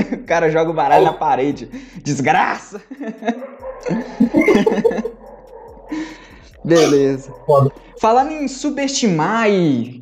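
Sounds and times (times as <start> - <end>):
men laughing: 0.9 - 1.2, 2.8 - 5.3.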